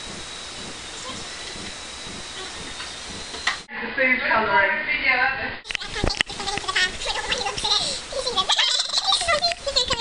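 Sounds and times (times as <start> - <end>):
girl laughing: 7.6 - 10.0.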